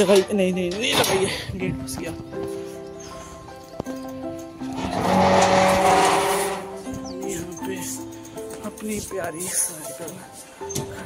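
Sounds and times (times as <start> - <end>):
background music with held notes: 0.0 - 11.0
harsh scraping noise: 4.6 - 6.9.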